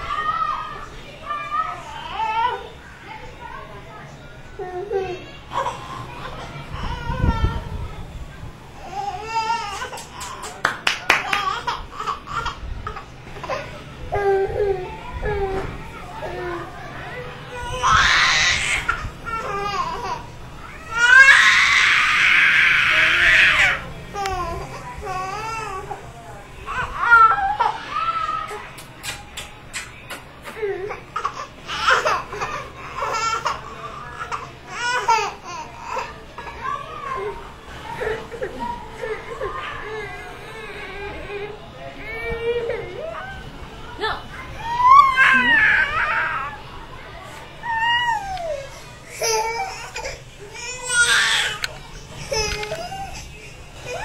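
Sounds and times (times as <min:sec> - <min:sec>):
baby screaming: 0:44.6 - 0:46.6.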